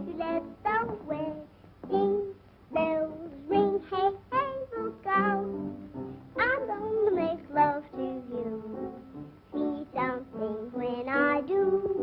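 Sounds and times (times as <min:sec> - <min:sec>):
light instrumental accompaniment: 0:04.7 - 0:12.0
woman singing with vibrato: 0:09.6 - 0:12.0.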